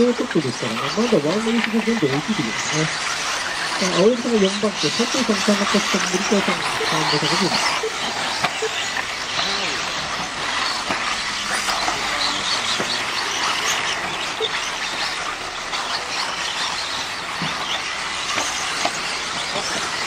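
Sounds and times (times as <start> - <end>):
high motor whine: 0.0 - 20.0
tyres on dirt: 0.0 - 20.0.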